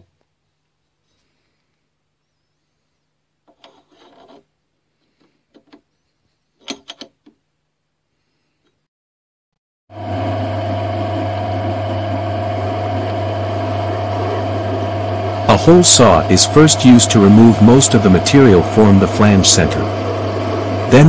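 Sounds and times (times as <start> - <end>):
lathe running with hum and whine: 9.9 - 21.0.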